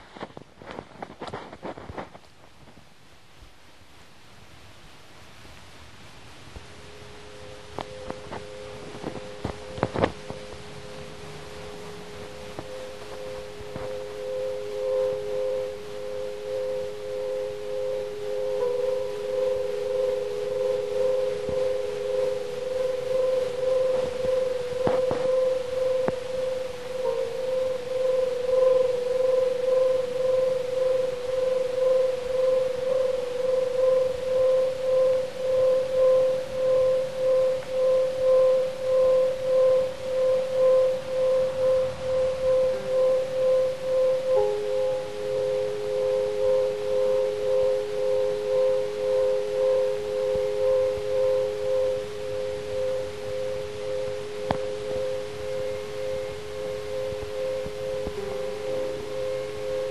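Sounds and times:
faint hiss: 0.0 - 59.9
pulsing drone tone: 6.7 - 59.9.

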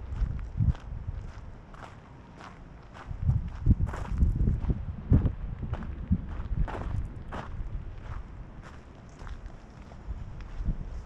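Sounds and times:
footsteps crunching on gravel: 0.0 - 11.0
low rumble: 2.9 - 8.7.

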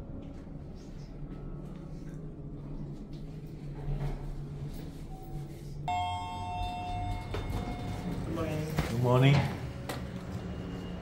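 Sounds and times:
lift arrival chime: 5.9 - 8.8.

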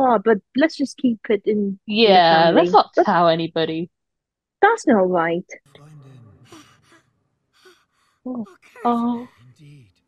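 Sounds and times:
person sighing: 5.8 - 7.0
breathy exhales: 5.8 - 10.0.

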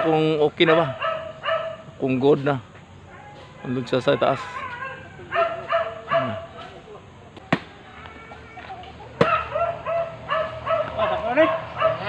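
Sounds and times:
machete chopping coconut: 7.4 - 7.7, 9.2 - 9.5.

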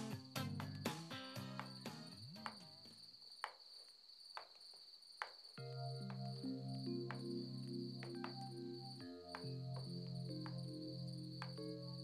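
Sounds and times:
crickets chirping: 0.0 - 12.0
music with long held chords: 5.6 - 12.0.

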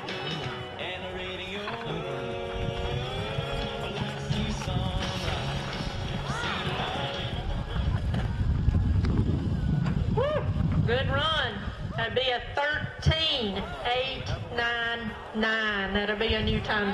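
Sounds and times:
music over loudspeaker: 0.0 - 7.7
people yelling and whooping: 5.2 - 10.7.

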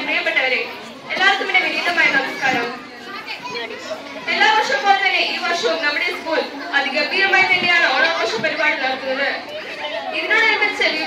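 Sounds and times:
girl speaking into a microphone: 1.0 - 11.0.

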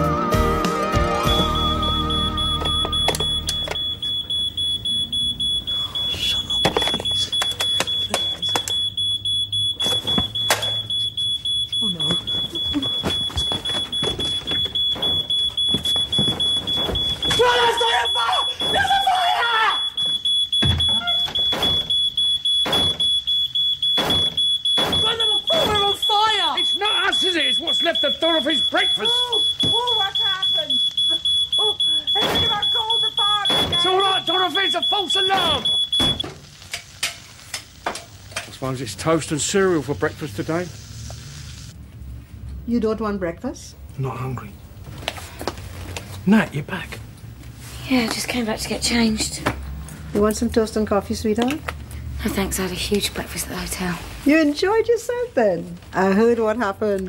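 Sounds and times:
smoke alarm high-pitched tone: 1.2 - 36.3
raised voices: 17.2 - 20.0.

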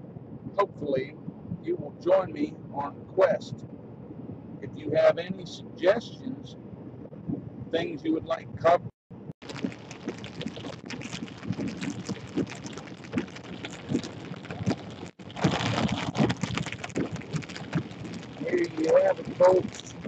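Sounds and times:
road and wind noise: 0.0 - 20.0
rain hitting car: 9.4 - 20.0.

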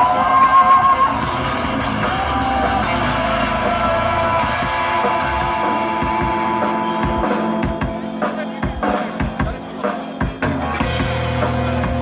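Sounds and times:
live metal band playing: 0.0 - 12.0.

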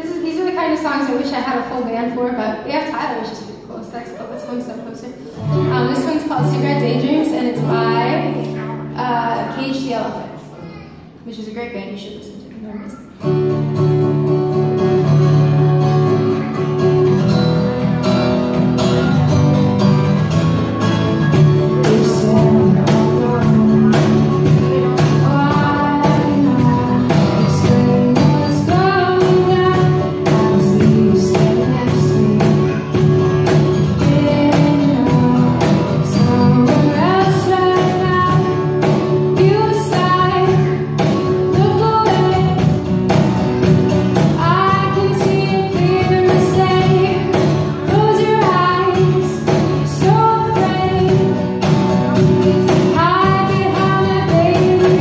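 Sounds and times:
acoustic guitar strumming: 5.3 - 11.2, 13.1 - 55.0
woman singing: 5.6 - 9.6, 21.6 - 42.9, 44.2 - 55.0.

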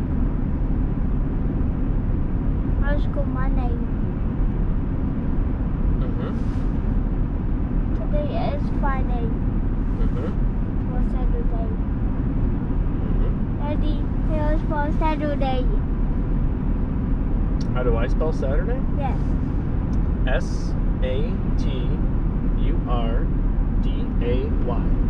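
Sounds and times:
diesel engine rumble: 0.0 - 25.0
person speaking: 6.0 - 6.5, 8.0 - 9.3, 10.0 - 11.8, 20.3 - 22.0, 22.6 - 23.2, 23.8 - 25.0.

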